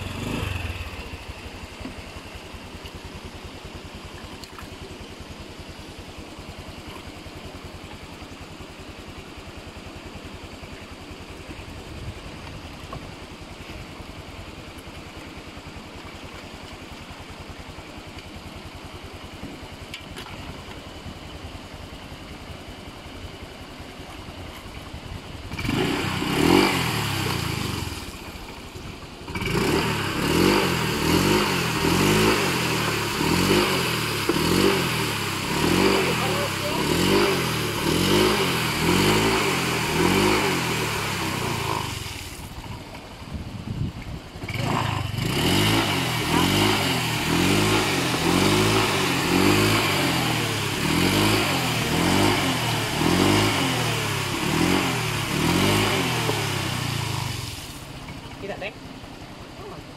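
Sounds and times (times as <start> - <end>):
scooter engine revving: 0.0 - 3.8, 25.3 - 42.8, 44.2 - 59.9
wheel spinning in water: 0.0 - 59.9.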